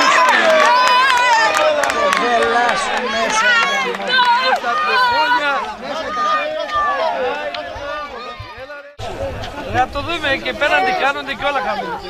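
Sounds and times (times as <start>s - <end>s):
men shouting over one another: 0.0s - 12.0s.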